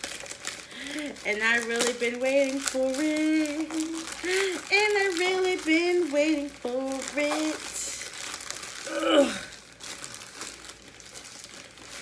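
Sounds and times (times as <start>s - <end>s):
packaging rustling and crinkling: 0.0s - 12.0s.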